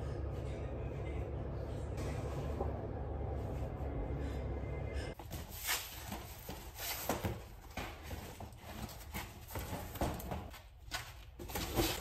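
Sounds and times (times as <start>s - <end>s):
cardboard boxes knocking and scuffing: 5.2s - 12.0s.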